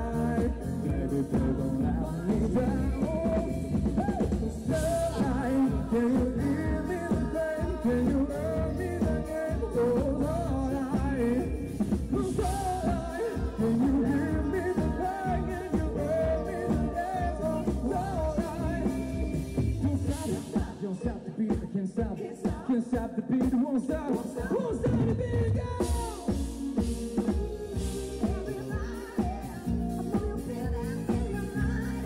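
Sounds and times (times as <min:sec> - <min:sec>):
electric guitar: 0:00.0 - 0:20.8
drums: 0:00.0 - 0:32.0
woman singing into microphone: 0:24.4 - 0:32.0.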